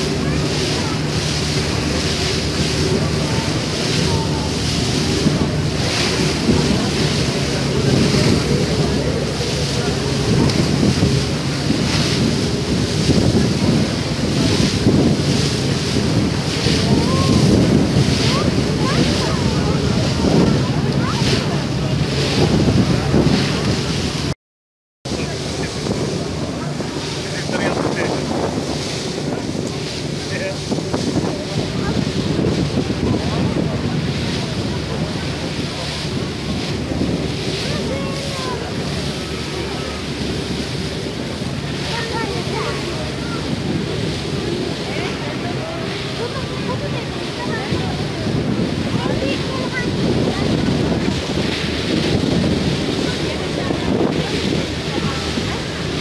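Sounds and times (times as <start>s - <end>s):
ferry engine rumbling: 0.0s - 24.4s, 25.0s - 56.0s
water rushing and splashing: 0.0s - 24.4s, 25.1s - 56.0s
wind buffeting microphone: 0.0s - 24.4s, 25.1s - 56.0s.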